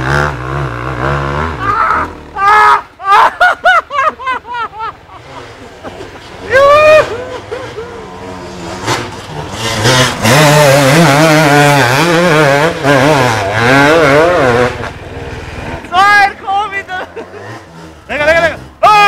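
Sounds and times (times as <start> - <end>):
dirt bike engine revving: 0.0 - 2.6, 5.0 - 18.9
person shouting: 1.6 - 3.2, 6.5 - 8.0, 15.9 - 17.2, 18.3 - 19.0.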